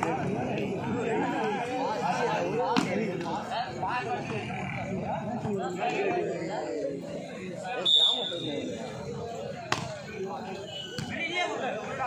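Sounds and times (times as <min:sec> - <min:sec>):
chatter of players: 0:00.0 - 0:12.0
referee's whistle blast: 0:07.8 - 0:08.6.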